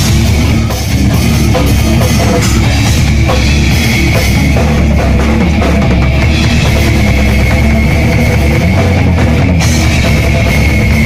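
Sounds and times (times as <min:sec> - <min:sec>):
death metal band playing: 0:00.0 - 0:11.0
distorted bass: 0:00.0 - 0:11.0
drum kit: 0:00.0 - 0:11.0
electric guitar: 0:00.0 - 0:11.0.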